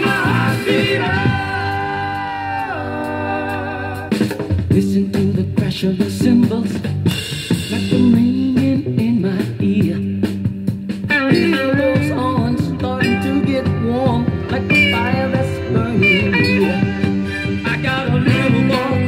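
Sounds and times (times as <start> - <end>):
soul record playing: 0.0 - 6.8, 11.1 - 19.0
bass and guitar over beat: 0.0 - 19.0
higher melody line: 11.2 - 19.0.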